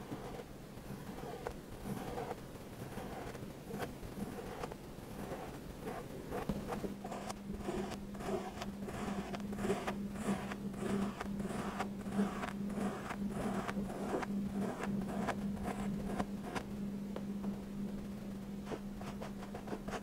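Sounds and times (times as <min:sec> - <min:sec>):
tool scraping kinetic sand: 0:00.0 - 0:16.6
steady low hum: 0:00.0 - 0:20.0.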